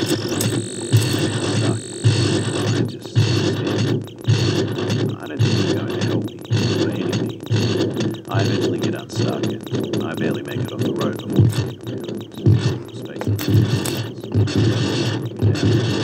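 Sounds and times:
synthesizer music with steady beat: 0.0s - 16.0s.

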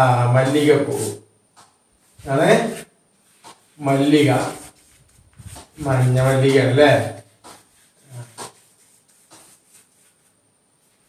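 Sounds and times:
chalk scratching on blackboard: 2.0s - 11.0s.

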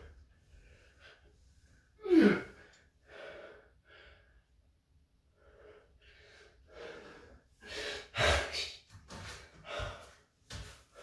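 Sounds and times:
man gasping for breath: 6.7s - 10.3s.

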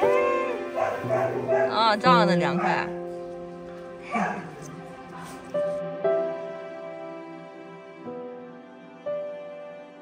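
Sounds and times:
soft piano music: 0.0s - 10.0s.

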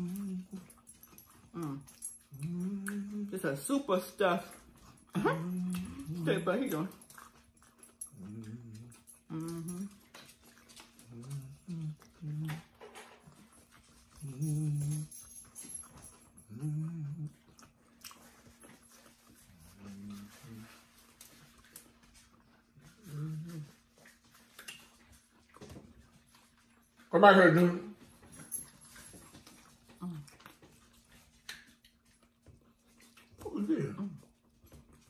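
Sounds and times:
dog whimpering and whining: 5.1s - 6.8s, 8.0s - 10.0s, 14.2s - 15.8s.

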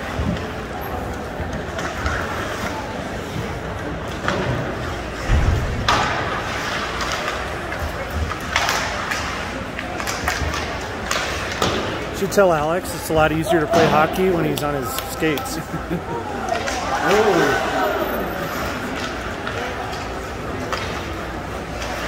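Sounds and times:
skates scraping ice: 0.0s - 5.3s, 6.1s - 15.8s, 16.4s - 22.0s
hockey sticks clacking: 0.0s - 17.9s, 18.5s - 22.0s
crowd voices: 0.0s - 22.0s
heavy thump: 5.3s - 6.4s.

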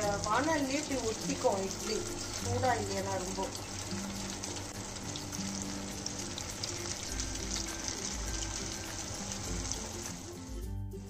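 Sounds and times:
food deep-frying in hot oil: 0.0s - 10.7s.

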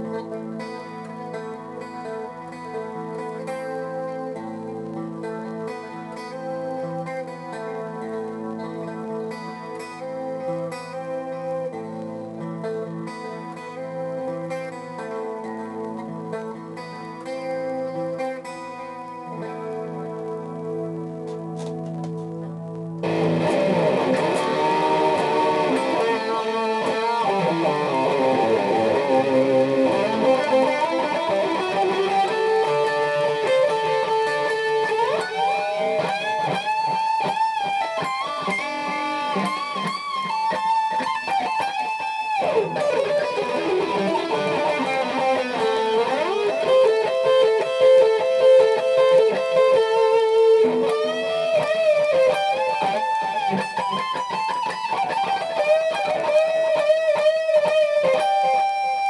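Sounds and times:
electric guitar lead line: 0.0s - 59.0s.

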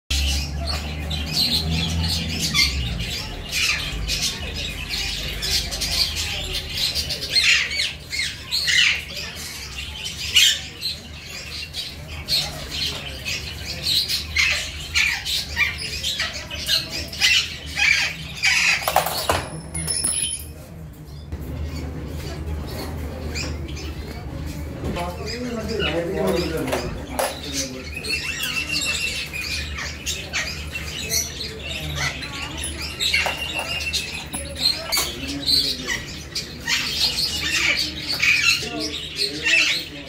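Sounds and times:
birds chirping and squawking: 0.1s - 40.0s.

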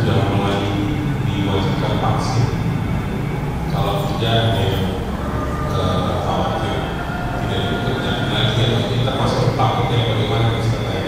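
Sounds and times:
distant indistinct person speaking: 0.0s - 11.0s
steady hum: 0.0s - 11.0s.

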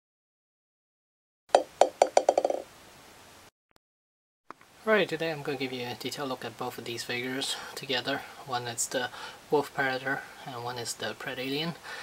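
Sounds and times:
ball bouncing: 1.5s - 2.7s.

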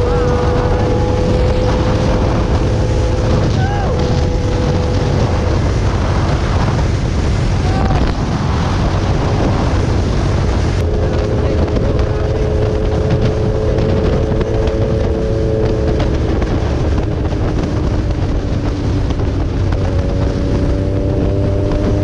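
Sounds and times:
motorcycle engine cruising: 0.0s - 22.0s
wind rumble on microphone: 0.0s - 22.0s.

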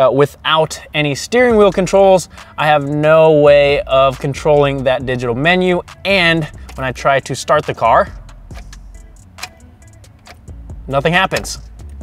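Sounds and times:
ignition key click: 6.6s - 6.9s, 8.5s - 10.5s, 11.3s - 12.0s.

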